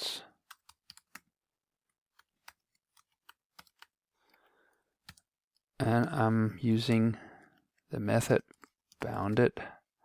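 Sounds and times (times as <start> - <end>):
faint computer keyboard typing: 0.4 - 5.7, 6.9 - 9.2.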